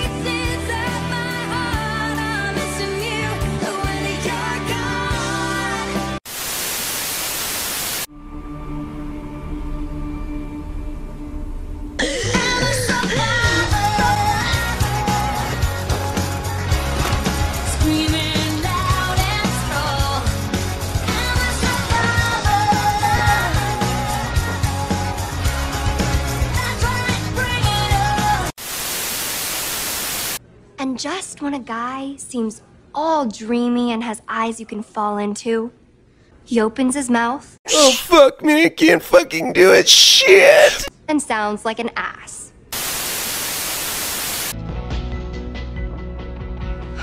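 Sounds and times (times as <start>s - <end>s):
music: 0.0s - 6.2s, 8.1s - 28.6s, 44.6s - 47.0s
hissing static: 6.3s - 8.1s, 28.6s - 30.4s, 42.7s - 44.6s
song with singing: 12.0s - 16.7s, 21.0s - 28.5s.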